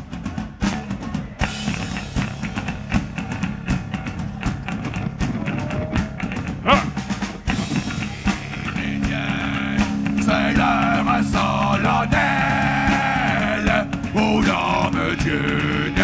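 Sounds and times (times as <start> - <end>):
drum kit hits: 0.0 - 16.0
electric guitars: 0.6 - 16.0.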